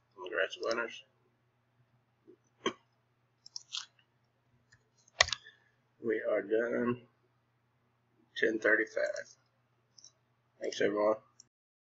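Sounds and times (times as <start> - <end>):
keyboard typing: 4.7 - 5.4.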